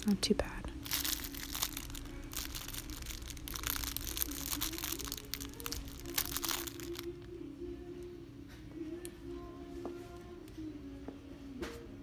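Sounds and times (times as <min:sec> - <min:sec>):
plastic packaging crinkling: 0:00.7 - 0:07.4.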